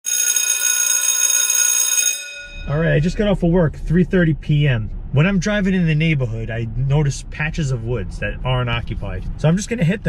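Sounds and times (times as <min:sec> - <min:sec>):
high metallic ringing tones: 0:00.0 - 0:03.0.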